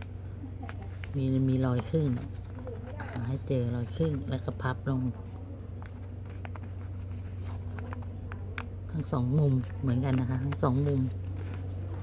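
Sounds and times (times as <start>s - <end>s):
paper crinkling: 0.0s - 12.0s
steady low hum: 0.0s - 12.0s.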